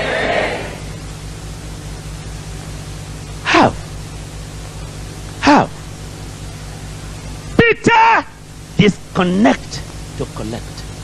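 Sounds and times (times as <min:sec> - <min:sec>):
steady hiss: 0:00.0 - 0:11.0
speech: 0:07.6 - 0:10.9.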